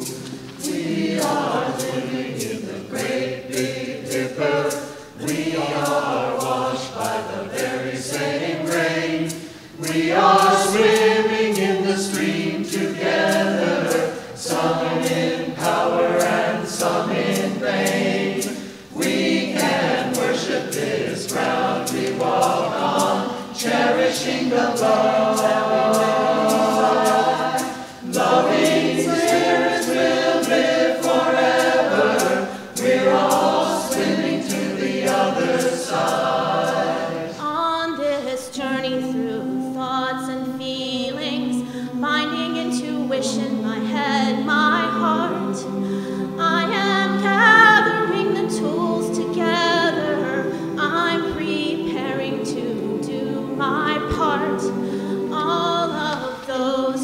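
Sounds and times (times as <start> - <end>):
mixed choir singing: 0.0 - 57.0.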